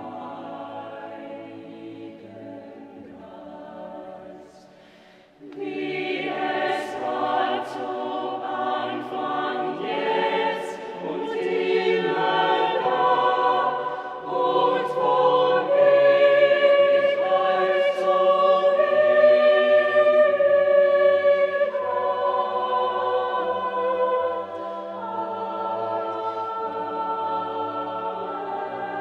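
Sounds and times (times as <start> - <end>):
choir singing unaccompanied: 0.0 - 4.8, 5.4 - 29.0.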